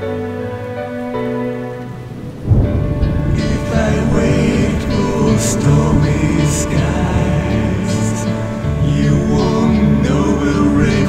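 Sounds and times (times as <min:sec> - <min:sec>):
rain: 0:00.0 - 0:11.0
sustained instrumental chord: 0:00.0 - 0:11.0
thunder rumble: 0:01.0 - 0:11.0.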